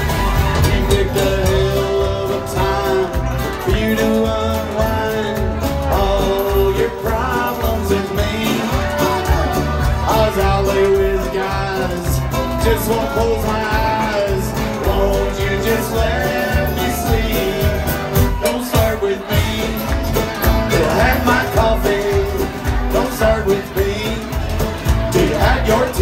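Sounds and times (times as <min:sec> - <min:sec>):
bluegrass band playing: 0:00.0 - 0:26.0
male lead vocal: 0:00.0 - 0:26.0.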